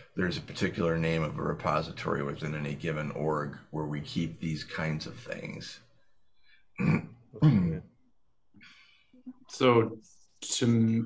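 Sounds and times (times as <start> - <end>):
person clearing throat: 6.8 - 8.0.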